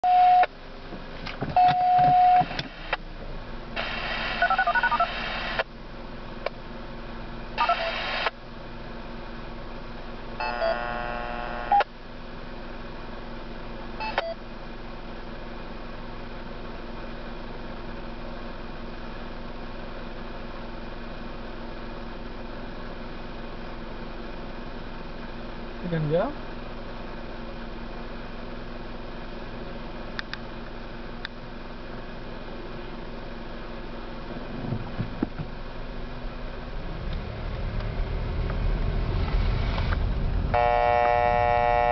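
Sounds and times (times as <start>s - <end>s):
radio tone beeps: 0.0s - 0.5s, 1.6s - 2.6s, 3.8s - 5.6s, 7.6s - 8.3s, 10.4s - 11.8s, 40.6s - 41.9s
low hum with hiss: 0.0s - 41.9s.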